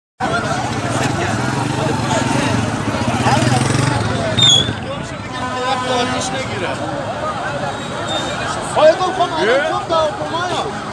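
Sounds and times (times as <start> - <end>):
people's voices: 0.2 - 10.9.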